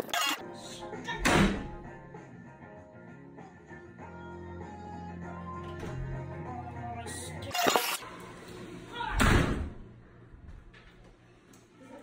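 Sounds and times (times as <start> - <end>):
background music: 0.0 - 9.1
door slamming: 9.1 - 9.8.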